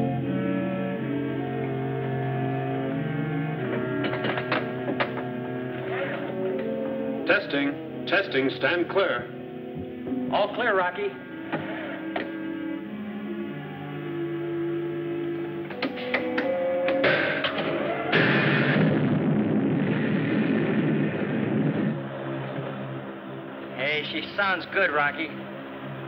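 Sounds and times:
rocket engine roaring: 17.8s - 23.0s.

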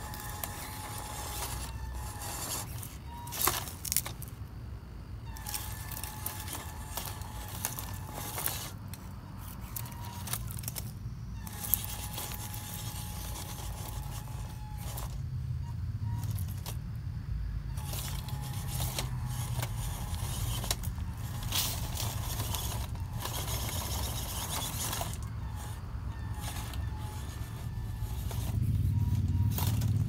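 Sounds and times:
small electric motor whine: 0.0s - 4.4s, 5.2s - 30.0s
tyres and stones scraping: 0.0s - 4.4s, 5.3s - 16.9s, 17.6s - 30.0s.

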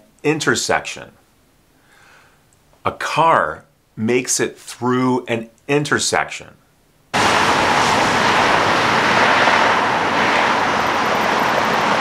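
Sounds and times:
cars driving through intersection: 7.2s - 12.0s.

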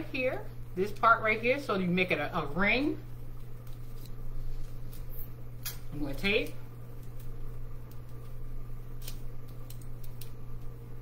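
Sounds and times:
steady low hum: 0.0s - 11.0s
tape clicks and crinkles: 3.4s - 5.8s, 7.0s - 10.7s.

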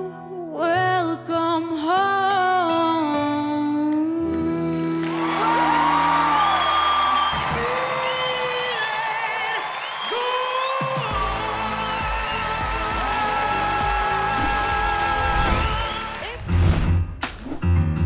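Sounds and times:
music: 0.0s - 18.0s
audience cheering and whooping: 5.0s - 16.4s.

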